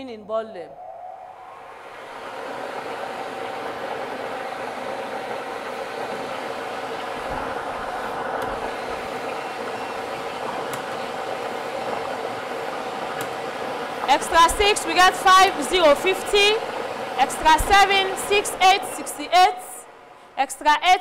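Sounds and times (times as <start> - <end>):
lottery machine humming and whining: 1.6 - 20.4.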